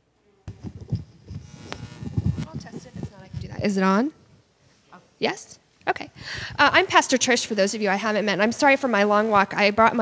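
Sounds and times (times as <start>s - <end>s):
faint buzz: 0.2s - 3.5s
microphone handling bumps: 0.5s - 4.3s.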